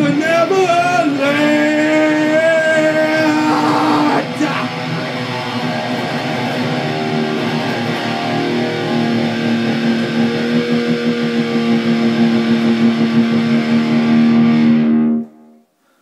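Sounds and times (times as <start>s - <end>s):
distorted electric guitar: 0.0s - 15.8s.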